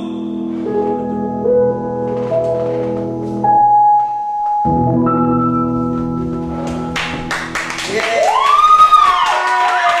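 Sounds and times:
audience clapping: 0:06.6 - 0:10.0
whooping cheer: 0:07.9 - 0:10.0.

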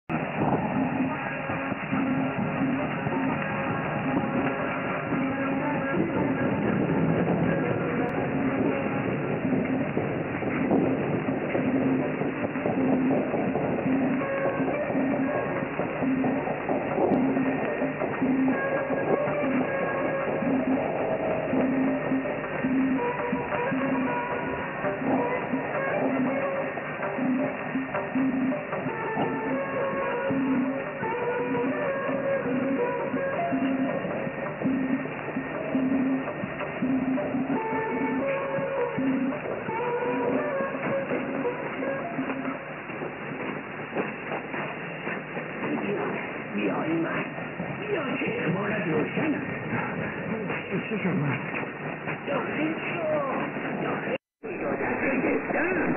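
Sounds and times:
music on am radio: 0:00.1 - 0:55.9.

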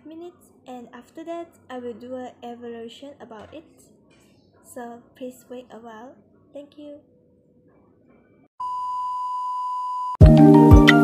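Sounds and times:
steady test tone beep: 0:08.6 - 0:10.2.

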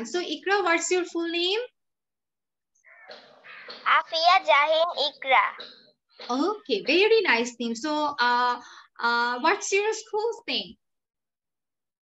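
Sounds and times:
rough voice-like sound: 0:03.8 - 0:05.6
girl speaking: 0:03.9 - 0:05.6.

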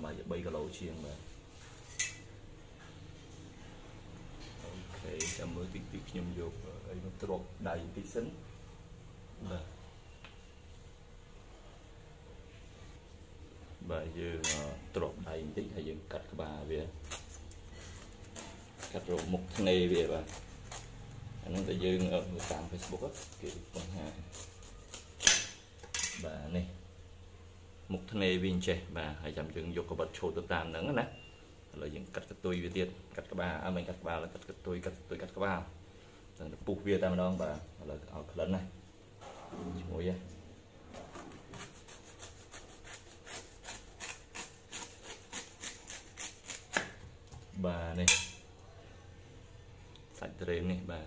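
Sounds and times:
metal knife clanking on tiled floor: 0:01.9 - 0:02.3, 0:25.2 - 0:26.2, 0:48.1 - 0:48.4
metallic knife clink: 0:01.9 - 0:02.3, 0:48.1 - 0:48.4.

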